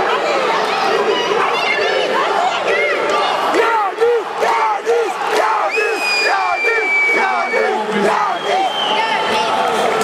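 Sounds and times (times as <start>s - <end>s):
crowd shouting and yelling: 0.0s - 10.0s.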